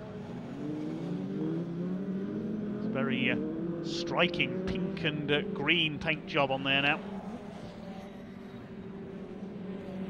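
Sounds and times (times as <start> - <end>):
racing truck engines droning: 0.0 - 10.0
road noise: 0.0 - 10.0.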